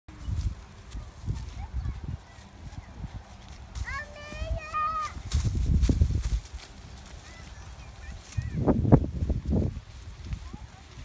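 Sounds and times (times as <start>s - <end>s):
footsteps crunching on straw: 0.1s - 11.0s
young child's voice: 1.3s - 3.1s, 3.7s - 5.3s, 7.2s - 8.7s.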